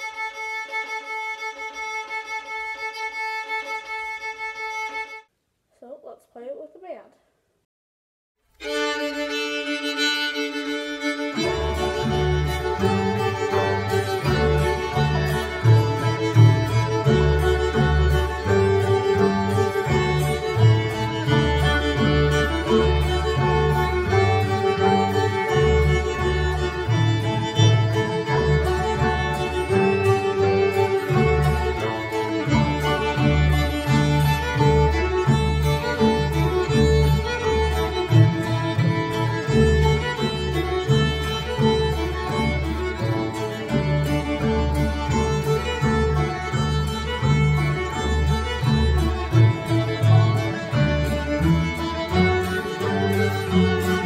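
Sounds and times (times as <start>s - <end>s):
string band playing: 0.0s - 5.2s, 8.5s - 54.0s
fiddles shuffle bowing: 8.5s - 54.0s
low bass line: 11.4s - 54.0s.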